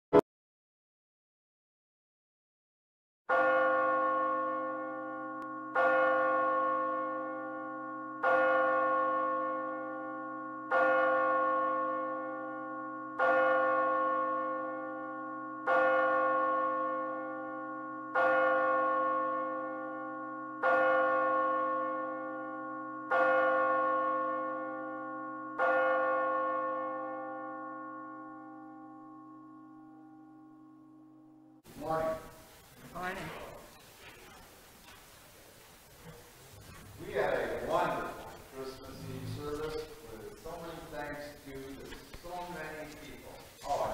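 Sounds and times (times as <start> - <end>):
church bell tolling: 3.3 - 31.6, 37.0 - 43.9.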